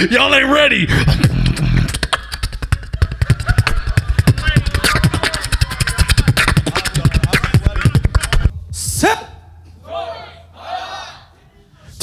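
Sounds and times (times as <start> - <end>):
beatboxing into microphone: 0.9 - 9.2.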